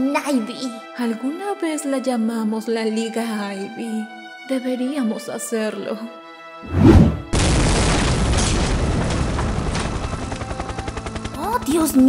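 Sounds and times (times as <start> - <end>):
rumbling blast: 6.7 - 10.0
low explosion boom: 6.8 - 9.8.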